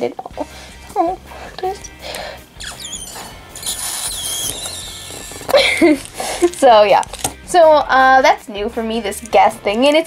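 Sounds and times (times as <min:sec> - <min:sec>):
plastic toy parts rustling: 0:04.3 - 0:07.4.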